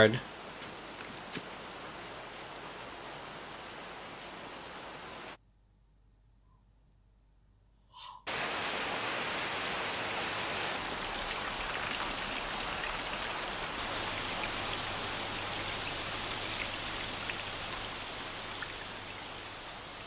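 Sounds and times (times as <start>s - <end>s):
steady rain hiss: 0.0s - 5.4s, 8.3s - 20.0s.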